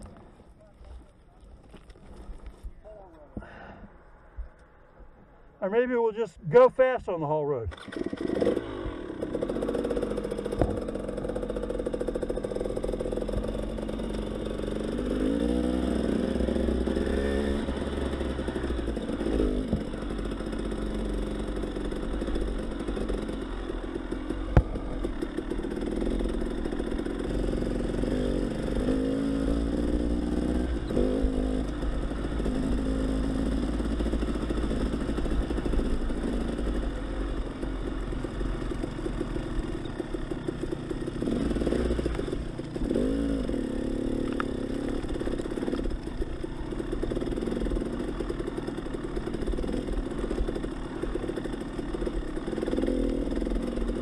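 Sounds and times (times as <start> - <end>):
stones clattering under tyres: 0.0 - 2.8
dirt bike engine revving: 7.7 - 54.0.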